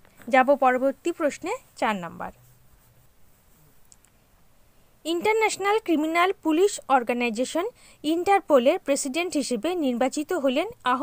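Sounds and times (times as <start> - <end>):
faint high clicks: 3.8 - 4.2.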